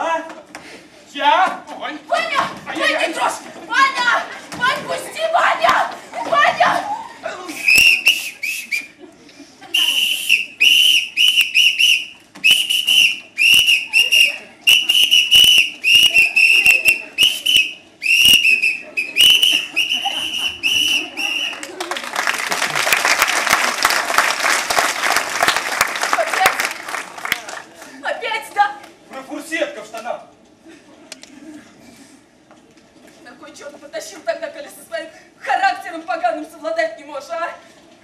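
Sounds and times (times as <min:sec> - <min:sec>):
short high whistle blasts: 0:07.6 - 0:08.9, 0:09.8 - 0:21.6
applause: 0:21.2 - 0:28.0.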